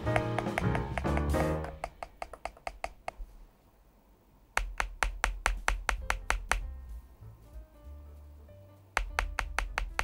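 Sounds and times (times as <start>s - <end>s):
keyboard key clacks: 4.6s - 6.7s, 9.0s - 10.0s.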